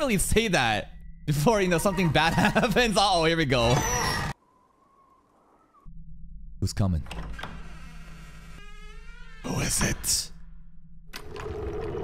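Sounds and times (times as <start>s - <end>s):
voice: 0.0s - 3.8s, 6.6s - 7.2s, 9.4s - 10.3s.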